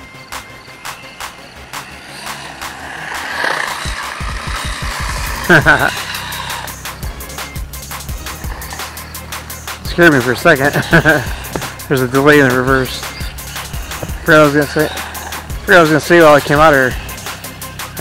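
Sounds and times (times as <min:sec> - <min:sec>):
electric motor whine: 0:00.0 - 0:18.0
music: 0:00.0 - 0:18.0
tyres hissing on wet road: 0:01.0 - 0:18.0.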